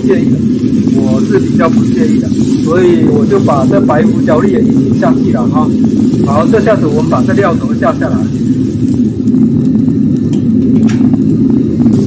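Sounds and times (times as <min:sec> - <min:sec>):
soup boiling in wok: 0:00.0 - 0:12.0.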